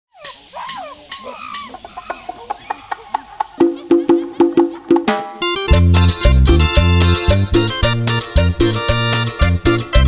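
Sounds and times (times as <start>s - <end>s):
cartoon monkey chattering: 0.1s - 5.2s
latin dance tune: 2.7s - 10.0s
hand-drum hits: 3.1s - 8.7s.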